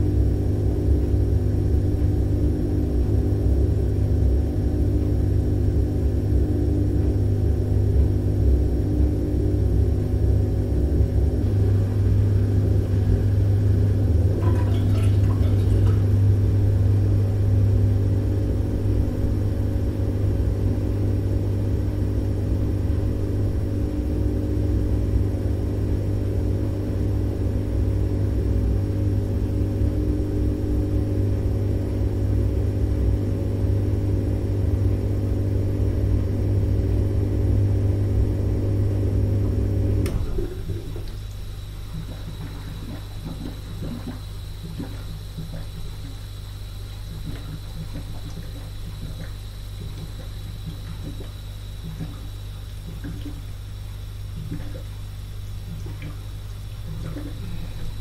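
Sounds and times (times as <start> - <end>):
dishwasher running: 6.8 - 21.1, 38.9 - 58.0.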